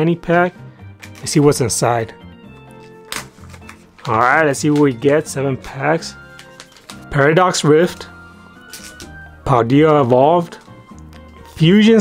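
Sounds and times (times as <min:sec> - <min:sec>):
faint background music: 0:00.0 - 0:12.0
foil pouch tearing open: 0:02.8 - 0:04.9, 0:06.2 - 0:07.1, 0:08.6 - 0:09.2.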